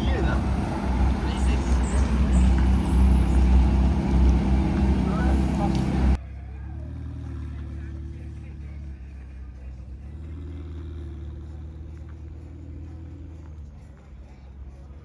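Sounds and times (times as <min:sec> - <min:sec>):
car engines idling: 0:00.0 - 0:15.0
faint voices: 0:04.8 - 0:15.0.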